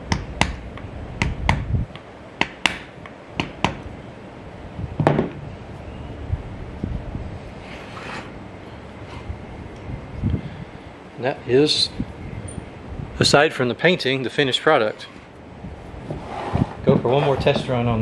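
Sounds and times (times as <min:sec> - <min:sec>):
heavier knock: 0:05.0 - 0:05.4.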